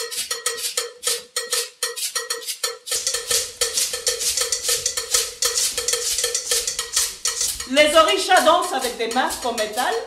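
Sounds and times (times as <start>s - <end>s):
metal cowbell struck: 0.0s - 10.0s
shaker rattling: 0.0s - 10.0s.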